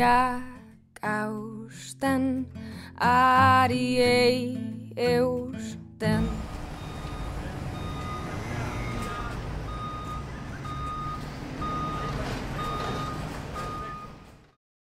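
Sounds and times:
electronic beeps: 6.2 - 14.2.

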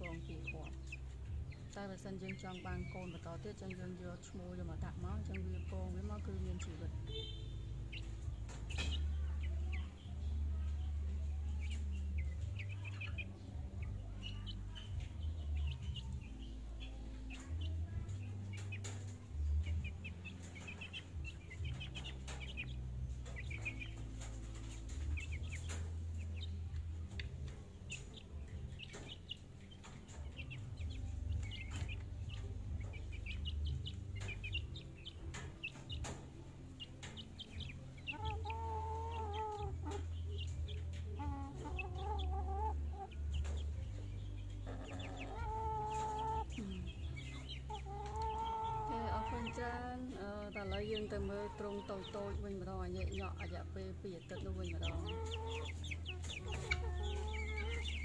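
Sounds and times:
chicks peeping: 0.0 - 58.0
wavering chicken calls: 11.5 - 58.0.

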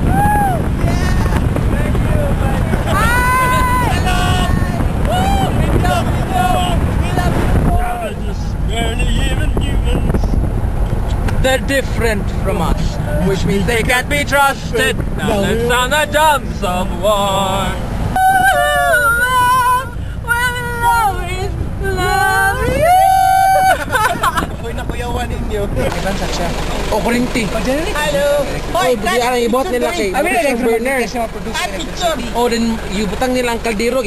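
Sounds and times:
young men shouting: 0.0 - 8.2, 14.5 - 24.6
wind buffeting microphone: 0.0 - 29.5
vehicle rumble: 0.0 - 34.0.

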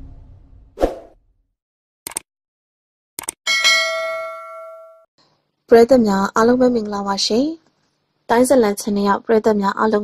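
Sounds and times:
notification bell chime: 3.5 - 5.0.

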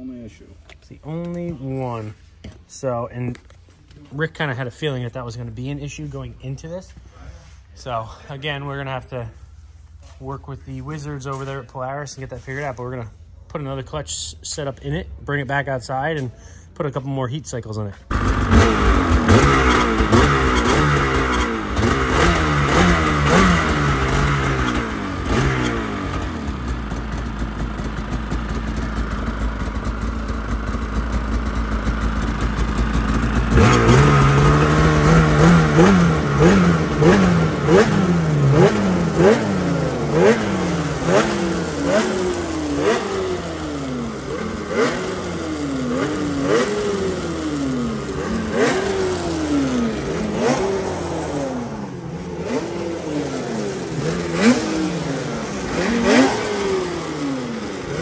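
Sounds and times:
snowmobile engine revving: 18.1 - 58.0.

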